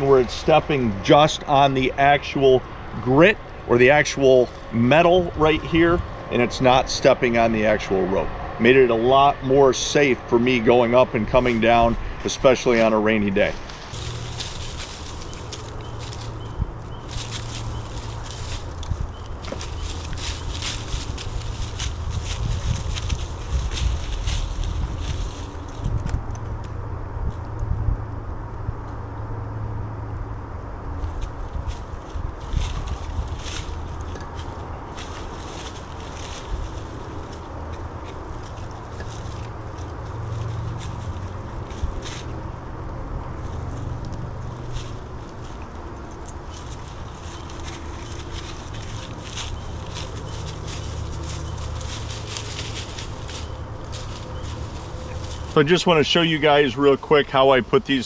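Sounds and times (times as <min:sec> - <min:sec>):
gear scraping against tree trunk: 0:00.0 - 0:27.4, 0:31.0 - 0:58.0
boots stepping on metal sticks: 0:13.3 - 0:26.0.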